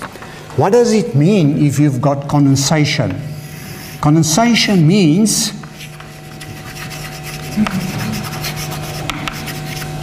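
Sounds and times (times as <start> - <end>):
chalk scratching on chalkboard: 3.3 - 10.0.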